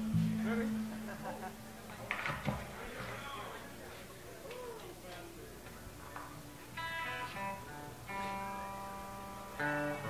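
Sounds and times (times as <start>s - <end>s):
band playing: 0.0s - 1.9s
electric guitar note: 0.0s - 2.0s, 6.8s - 10.0s.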